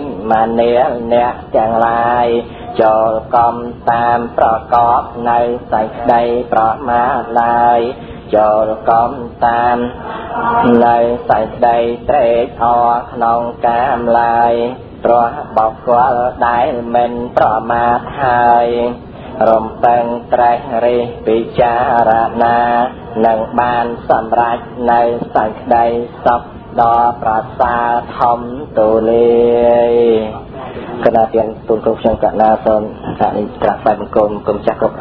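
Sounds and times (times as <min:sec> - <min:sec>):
man chanting: 0:00.0 - 0:35.0.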